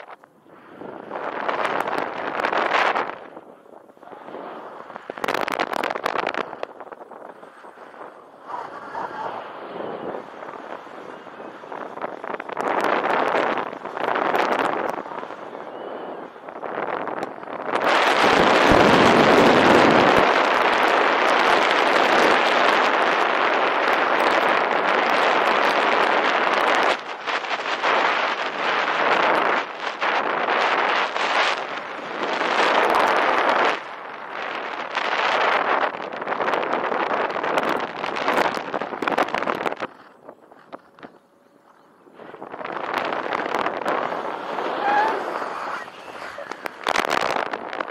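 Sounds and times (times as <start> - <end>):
wind noise on microphone: 0.0 - 47.9.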